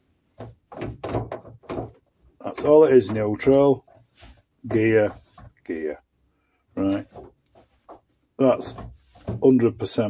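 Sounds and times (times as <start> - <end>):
gear lever clunks and knocks: 0.4 - 3.9.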